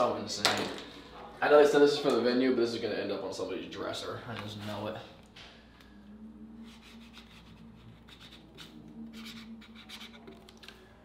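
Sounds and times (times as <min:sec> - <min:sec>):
marker scratching on cardboard: 0:06.6 - 0:10.4.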